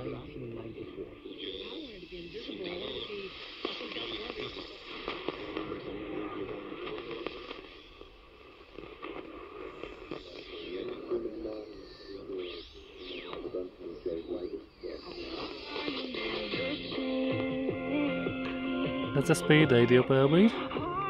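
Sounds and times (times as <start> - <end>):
radio static and clicks: 0.0 - 21.0
radio station speech: 0.0 - 21.0
sweeping heterodyne whistles: 11.5 - 17.3.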